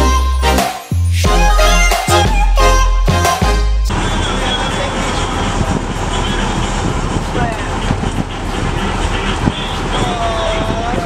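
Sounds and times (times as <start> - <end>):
boat engine: 1.3 - 11.0
wind buffeting microphone: 3.9 - 11.0.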